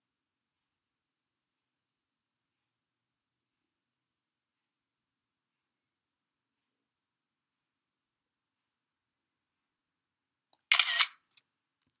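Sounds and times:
shutter-like click and rattle: 10.6 - 11.2.

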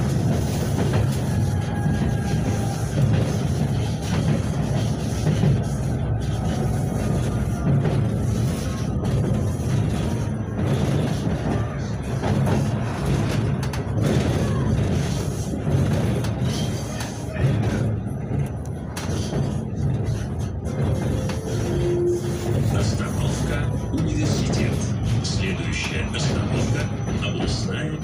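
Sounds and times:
tram wheels rumbling on rails: 0.0 - 28.0.

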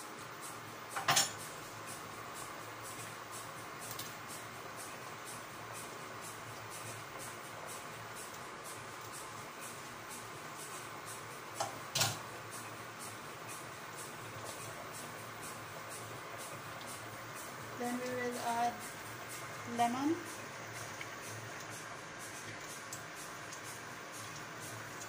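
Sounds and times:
soup bubbling: 0.8 - 25.0.

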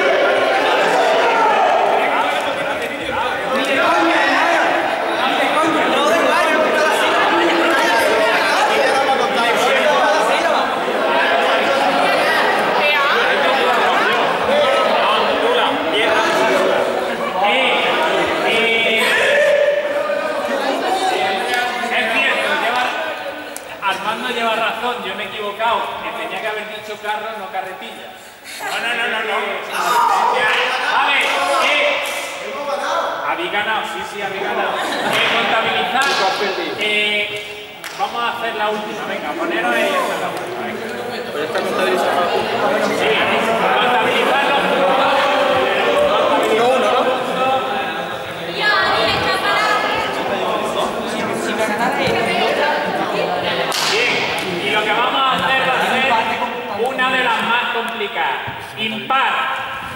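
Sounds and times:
crowd chattering: 0.0 - 59.9
people talking at once: 0.0 - 59.9.

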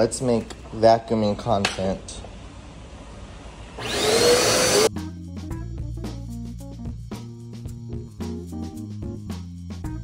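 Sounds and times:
vacuum cleaner whining: 3.7 - 4.9
music with beat and plucked notes: 4.9 - 10.0.

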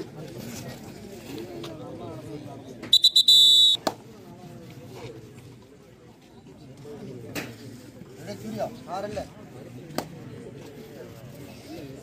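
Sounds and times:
faint voices of players and crowd: 0.0 - 12.0
referee's whistle: 2.9 - 3.8.

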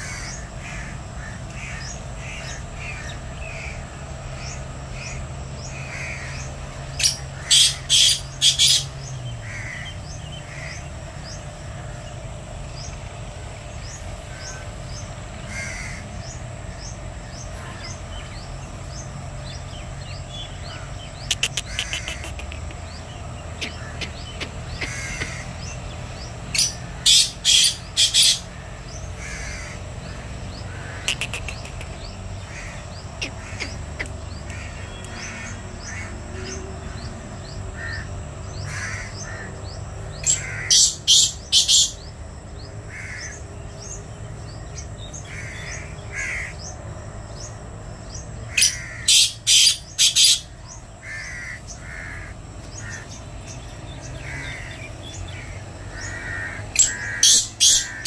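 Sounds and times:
francolin calling: 0.0 - 58.0.

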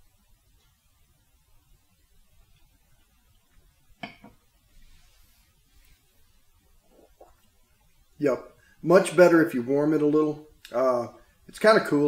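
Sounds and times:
faint small sounds: 0.0 - 12.0.

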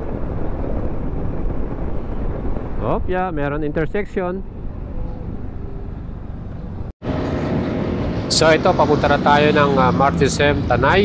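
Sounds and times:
road and air noise: 0.0 - 11.0
scooter engine hum: 4.6 - 11.0.

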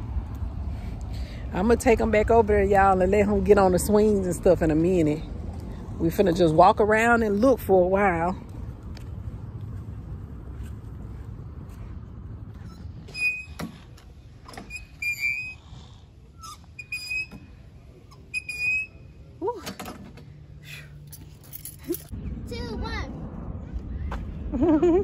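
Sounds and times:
fitness machine squeaking: 12.5 - 20.0
low rumble: 21.8 - 25.0.

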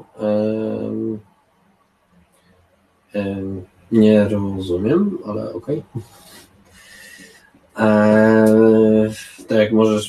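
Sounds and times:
man's drawn-out hesitation sound: 0.0 - 1.2, 3.2 - 6.4, 7.8 - 10.0
man breathing softly: 6.0 - 7.6.

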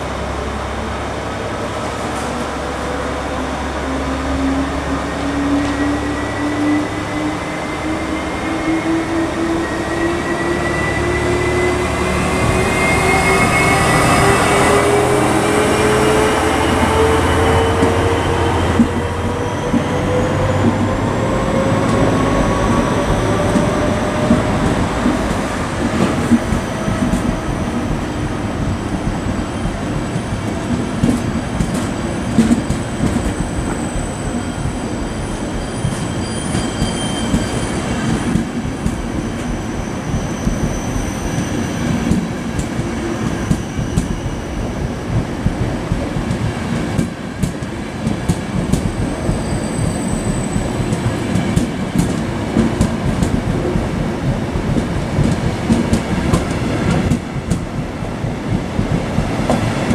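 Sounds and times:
train wheels rumbling on rails: 0.0 - 59.9
high wheel squeals: 9.6 - 20.6, 32.2 - 38.4, 39.0 - 42.2.

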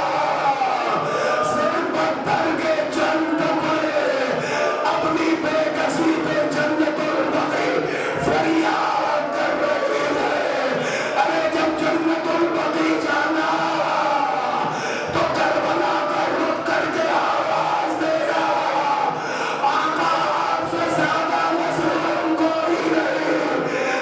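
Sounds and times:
man chanting a lament: 0.0 - 24.0
mourners crying out: 0.0 - 24.0.

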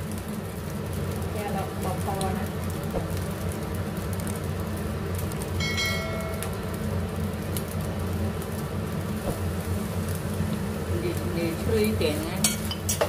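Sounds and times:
rice sizzling in a frying pan: 0.0 - 13.0
steady low hum: 0.0 - 13.0.

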